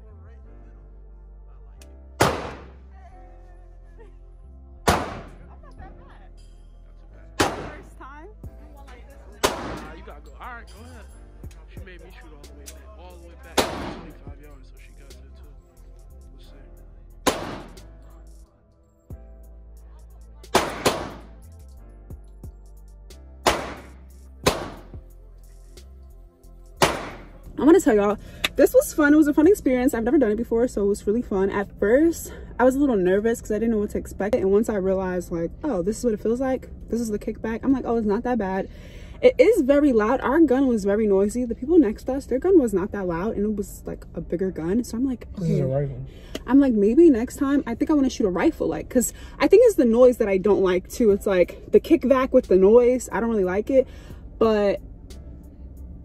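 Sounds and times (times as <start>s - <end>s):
background music: 0.0s - 56.0s
handgun shots echoing: 2.2s - 2.7s, 7.4s - 7.8s, 9.4s - 9.9s, 17.3s - 17.9s, 20.5s - 21.3s, 23.4s - 24.8s, 26.8s - 27.3s.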